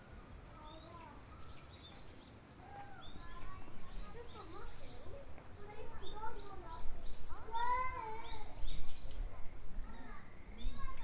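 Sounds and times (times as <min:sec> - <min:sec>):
small birds chirping: 0:00.5 - 0:11.0
child's high drawn-out call: 0:00.6 - 0:01.5, 0:02.6 - 0:05.0, 0:07.3 - 0:08.6
people talking: 0:02.8 - 0:08.6, 0:09.2 - 0:11.0.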